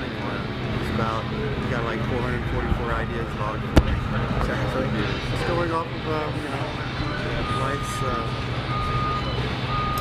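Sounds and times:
steady low rumble: 0:00.0 - 0:10.0
reversing alarm beeping: 0:07.0 - 0:10.0.

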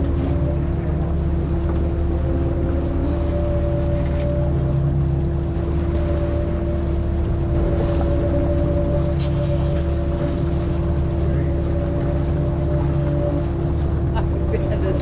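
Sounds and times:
boat engine running: 0:00.0 - 0:15.0
faint water noise: 0:00.0 - 0:15.0.

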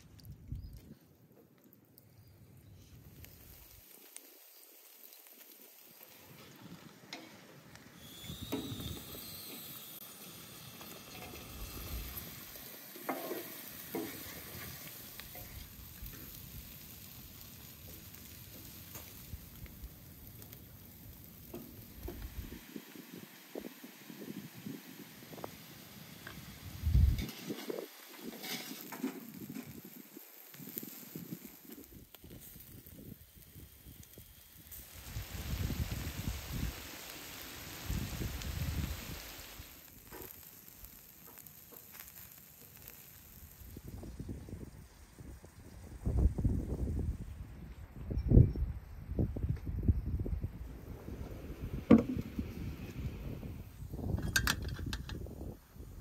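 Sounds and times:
meat and onion sizzling in pan: 0:03.0 - 0:47.3
wooden spatula scraping pan: 0:12.9 - 0:15.6, 0:28.3 - 0:29.2.

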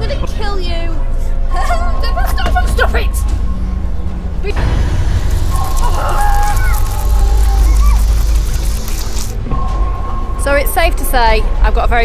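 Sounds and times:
background music: 0:00.0 - 0:12.0
heavy low rumble: 0:00.0 - 0:12.0
water spray hissing: 0:05.2 - 0:09.4.

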